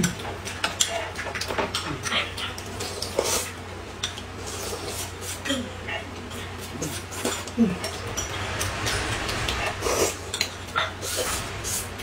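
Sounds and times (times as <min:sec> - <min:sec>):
noodles slurped and chewed: 0:00.0 - 0:05.6, 0:06.2 - 0:12.0.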